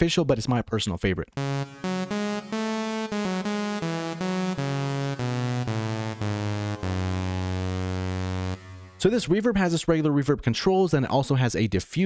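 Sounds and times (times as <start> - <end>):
synthesizer low note with reverb: 1.4 - 9.1.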